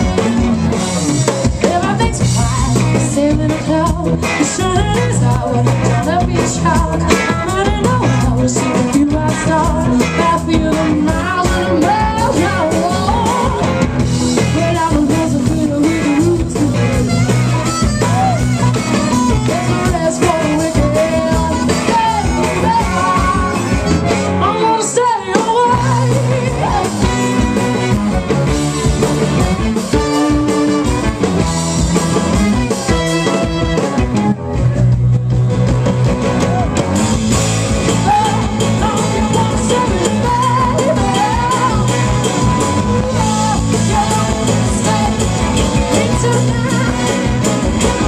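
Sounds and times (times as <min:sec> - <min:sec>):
soul-funk band playing: 0:00.0 - 0:48.0
woman singing: 0:01.4 - 0:18.4, 0:19.0 - 0:27.9, 0:37.8 - 0:48.0.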